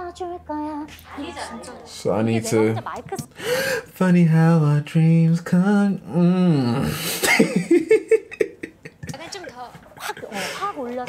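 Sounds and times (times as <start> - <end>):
quiet talking: 0.9 - 3.4.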